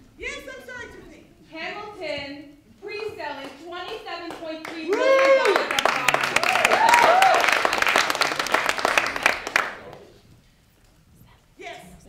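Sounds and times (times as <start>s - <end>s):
audience clapping and cheering: 3.4s - 10.2s
person whooping: 4.9s - 5.7s, 6.4s - 7.7s.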